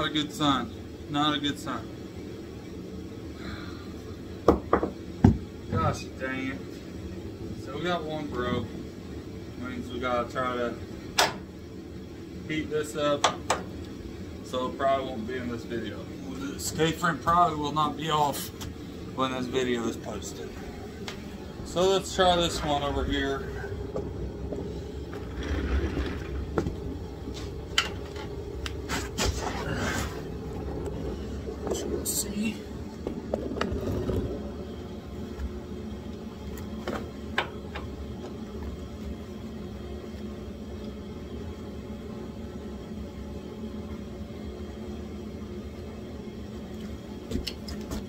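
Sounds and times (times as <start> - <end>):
low hum: 5.0 - 47.2.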